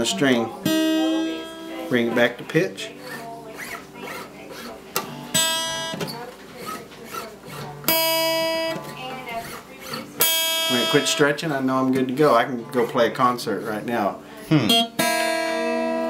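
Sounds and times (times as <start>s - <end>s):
acoustic guitar string plucked: 0.0s - 16.0s.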